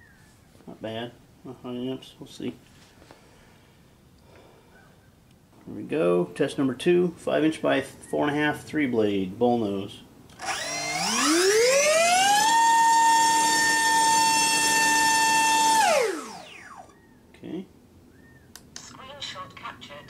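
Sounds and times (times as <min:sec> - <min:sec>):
electric motor propeller whine: 0:10.3 - 0:17.0.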